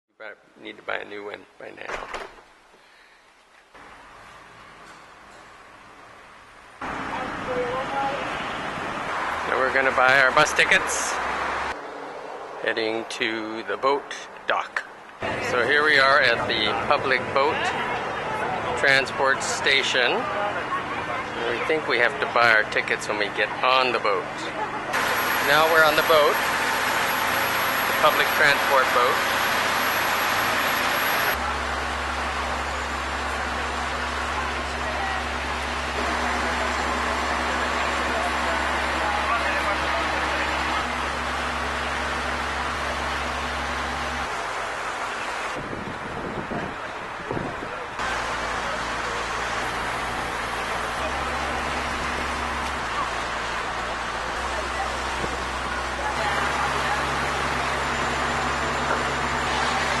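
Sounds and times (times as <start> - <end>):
wind: 0.1 - 60.0
boat engine humming: 3.7 - 13.8, 15.0 - 60.0
passengers talking: 6.8 - 11.3, 12.6 - 45.6, 46.2 - 60.0
water noise: 24.8 - 60.0.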